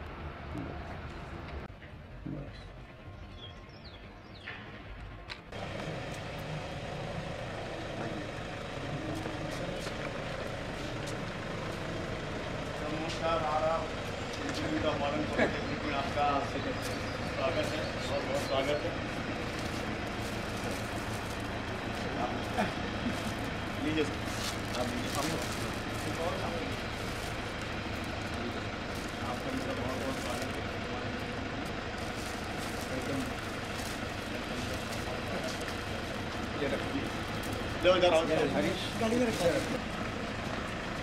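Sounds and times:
outdoor background noise: 0.0 - 41.0
men talking indistinctly: 12.6 - 27.3, 28.1 - 31.8, 32.6 - 39.8.

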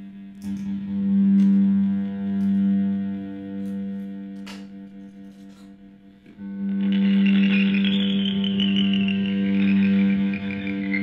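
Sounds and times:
distorted electric guitar drone: 0.0 - 11.0
pulsing high sliding tone: 6.8 - 11.0.

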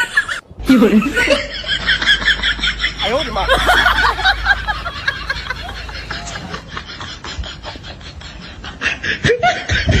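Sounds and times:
laughter in bursts: 0.0 - 10.0.

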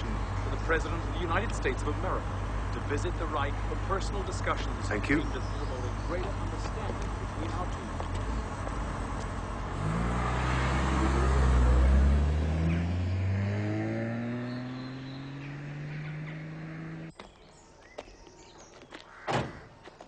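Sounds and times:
car engine accelerating: 0.0 - 17.1.

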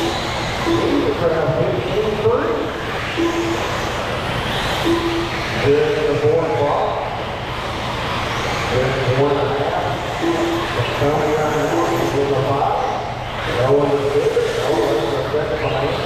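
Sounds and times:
electric rc car motors: 0.0 - 16.0.

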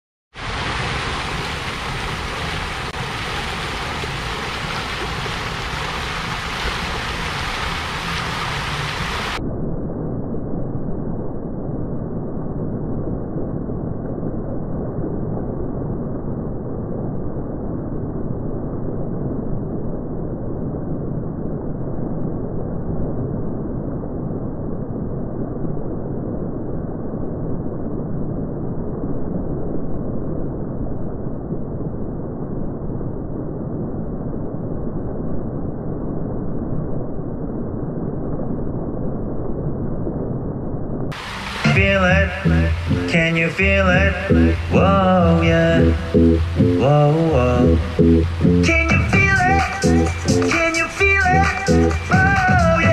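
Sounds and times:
fountain water splashing: 0.4 - 9.4, 41.1 - 52.9.

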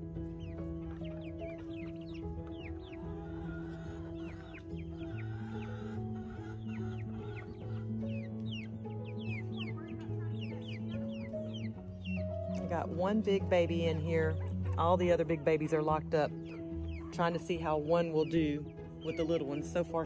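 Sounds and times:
background music of sustained chords: 0.0 - 20.0
young chickens peeping: 0.0 - 20.0.

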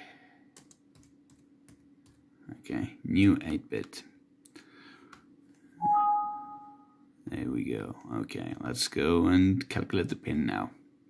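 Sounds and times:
two-tone alert chime: 5.8 - 6.9.

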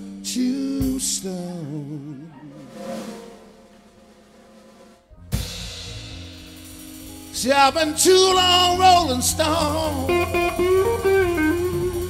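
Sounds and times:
drum hit: 2.5 - 6.9
live blues band playing: 5.1 - 12.0.

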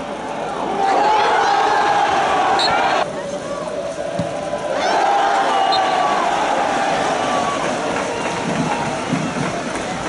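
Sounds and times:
crowd shouting and cheering: 0.0 - 10.0
steady rush of noise: 0.0 - 10.0.

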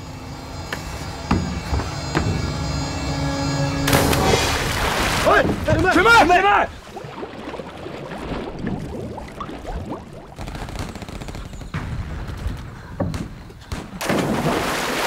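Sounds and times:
dull knocks: 0.7 - 2.6
person diving into water splash: 3.9 - 5.7, 6.7 - 10.7, 14.0 - 15.0.

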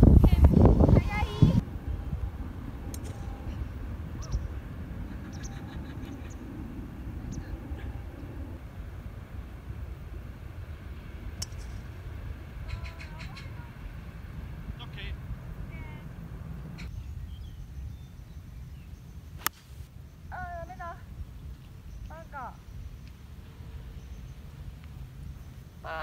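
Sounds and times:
wind rumbling on microphone: 0.0 - 26.0
faint sharp clicks: 19.4 - 19.7.

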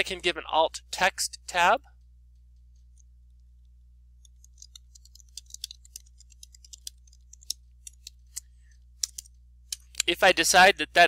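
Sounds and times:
low electrical hum: 0.0 - 11.0
keyboard typing: 4.2 - 10.1.

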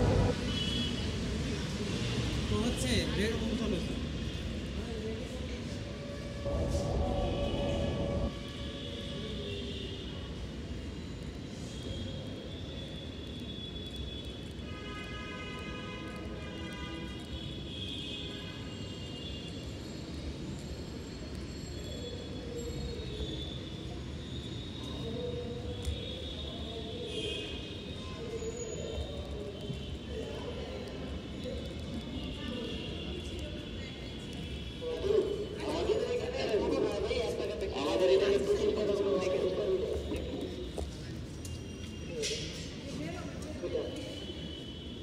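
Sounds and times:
train rumble: 0.0 - 0.5, 5.7 - 8.5
rush of train: 0.0 - 2.4, 4.6 - 9.3.

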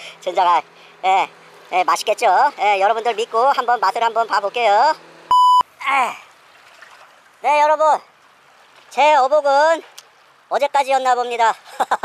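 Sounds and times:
electronic censor bleep: 5.3 - 5.7.

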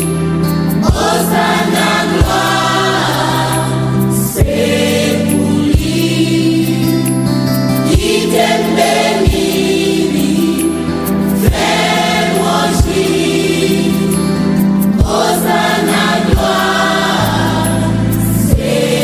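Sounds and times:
choir singing gospel: 0.0 - 19.0
sustained backing chords: 0.0 - 19.0.

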